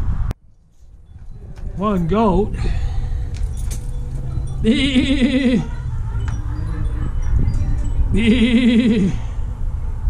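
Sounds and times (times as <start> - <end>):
low rumble: 0.0 - 10.0
goat bleating: 4.6 - 5.8, 8.1 - 9.3.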